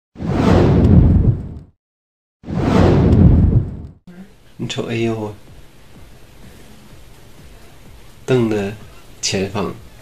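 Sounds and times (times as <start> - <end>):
deep whoosh: 0.2 - 1.7, 2.4 - 4.0.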